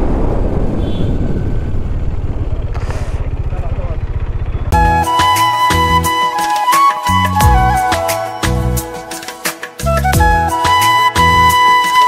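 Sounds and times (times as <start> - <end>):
motorcycle engine running: 0.3 - 5.1
music: 4.7 - 12.0.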